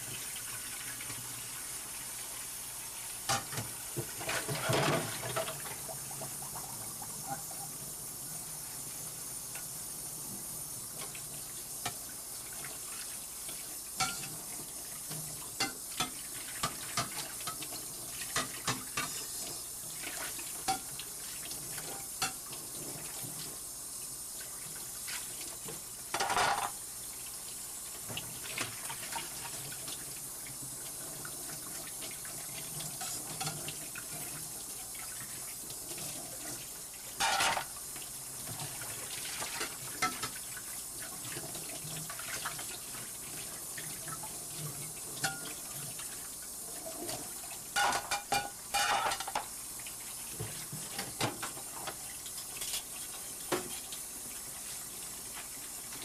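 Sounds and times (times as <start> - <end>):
tap water running into sink: 0.0 - 56.0
dishes clicking: 37.2 - 37.7, 47.8 - 49.5.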